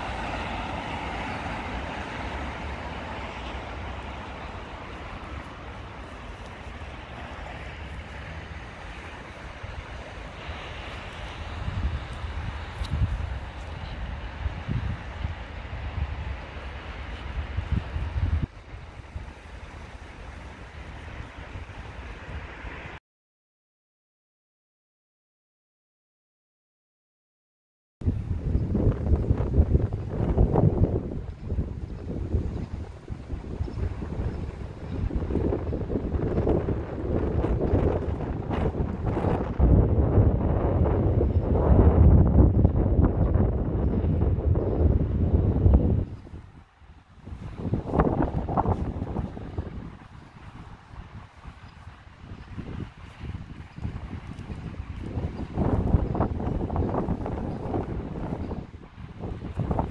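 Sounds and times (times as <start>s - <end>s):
wind buffeting microphone: 0.0s - 23.0s, 28.0s - 59.9s.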